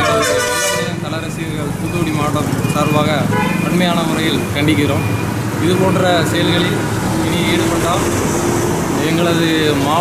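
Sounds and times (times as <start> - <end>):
vehicle horn: 0.0 - 1.1, 3.3 - 3.7
man talking: 0.0 - 8.2, 8.9 - 10.0.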